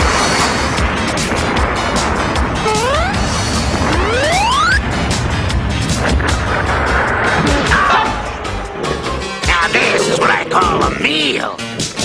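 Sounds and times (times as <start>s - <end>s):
building collapsing rumble: 0.0s - 10.8s
background music: 0.0s - 12.0s.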